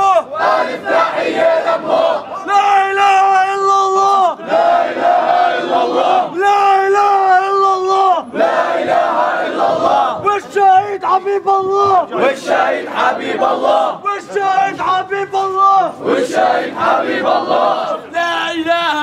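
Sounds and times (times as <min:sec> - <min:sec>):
youths chanting in unison: 0:00.0 - 0:02.5, 0:04.1 - 0:06.4, 0:08.3 - 0:10.3, 0:12.1 - 0:14.4, 0:15.8 - 0:18.1.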